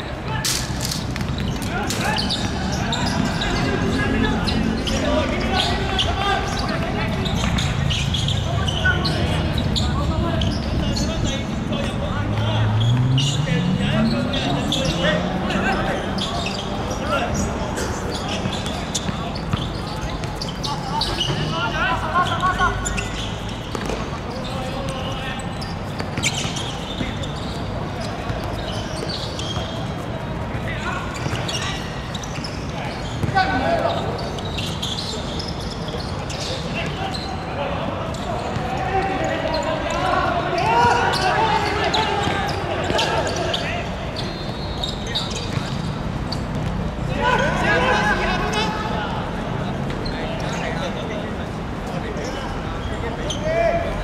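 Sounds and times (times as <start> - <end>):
players shouting: 0.1 - 45.4, 47.0 - 49.7
ball kicked and bouncing: 23.7 - 24.2.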